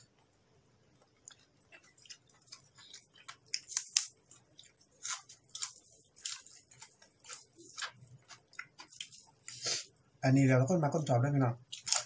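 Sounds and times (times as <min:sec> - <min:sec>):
person chewing food wetly: 0:00.1 - 0:10.0, 0:11.6 - 0:12.0.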